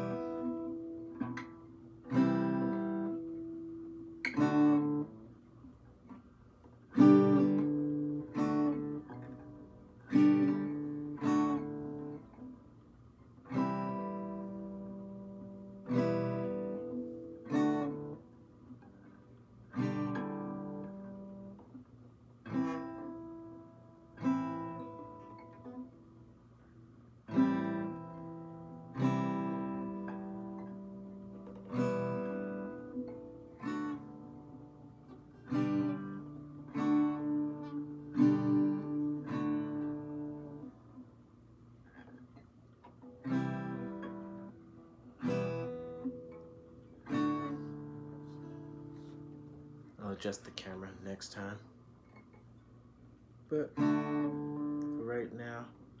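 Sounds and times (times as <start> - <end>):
acoustic guitar strumming chords: 0.0 - 56.0.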